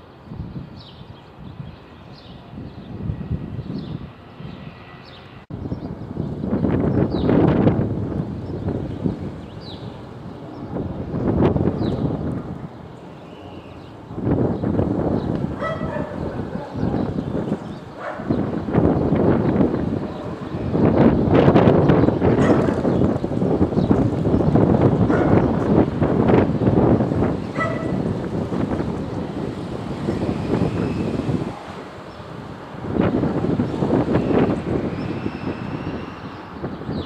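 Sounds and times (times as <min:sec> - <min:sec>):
loud outdoor rushing noise: 0:00.0 - 0:37.0.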